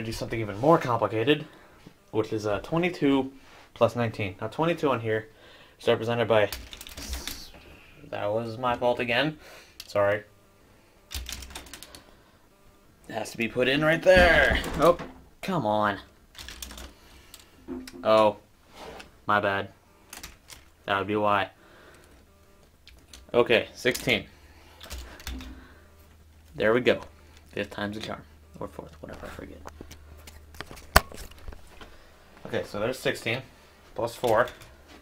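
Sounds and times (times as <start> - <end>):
low steady hum: 0.0 - 35.0
plastic parts clicking and clattering: 6.4 - 7.5, 11.1 - 12.0, 16.3 - 18.3, 20.1 - 20.8, 24.8 - 25.6.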